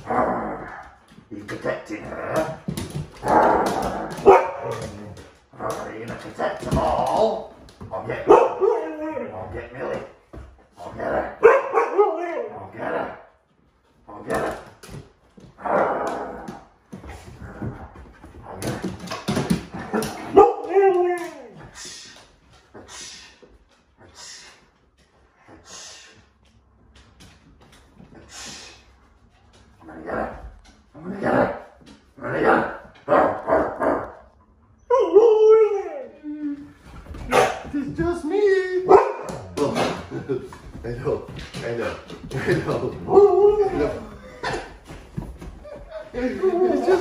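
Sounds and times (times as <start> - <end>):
huskies barking and whining: 3.1 - 5.4, 19.8 - 21.6, 37.2 - 38.2, 38.9 - 39.6.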